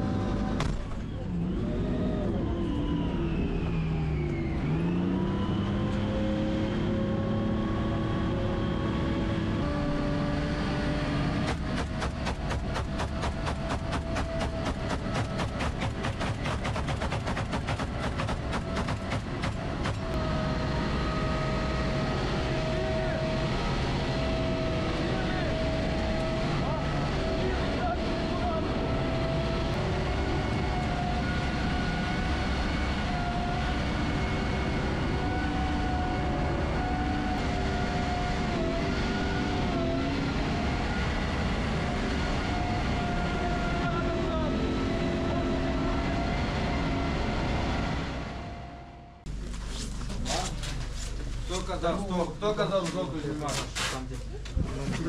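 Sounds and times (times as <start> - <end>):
vehicle engine running under load: 0.0 - 55.0
rapid sharp clatter: 11.5 - 20.1.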